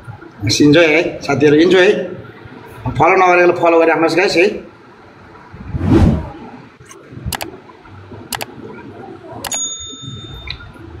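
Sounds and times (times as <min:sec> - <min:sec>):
bright bell-like ding: 0:09.5 - 0:10.7.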